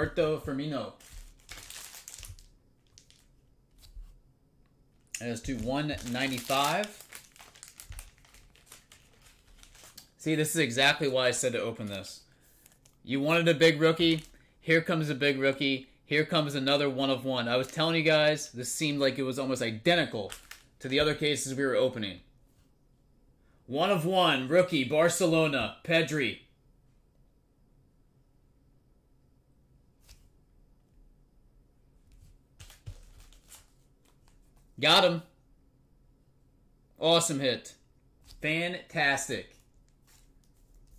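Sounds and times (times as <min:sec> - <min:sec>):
packaging crinkling: 0:01.0 - 0:04.0, 0:05.0 - 0:10.2, 0:14.0 - 0:14.4, 0:20.2 - 0:20.9, 0:32.6 - 0:34.4
card handling clicks and rustles: 0:05.0 - 0:10.2, 0:20.2 - 0:21.2, 0:32.6 - 0:34.7.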